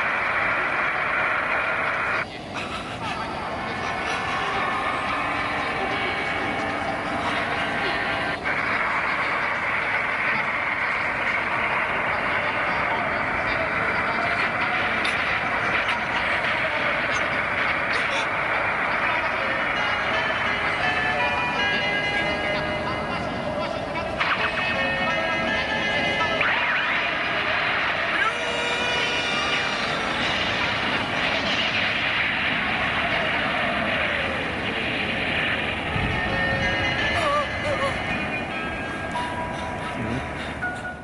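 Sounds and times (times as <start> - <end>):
heavy rain roaring: 0.0 - 21.4, 25.4 - 40.6
music: 18.9 - 31.2.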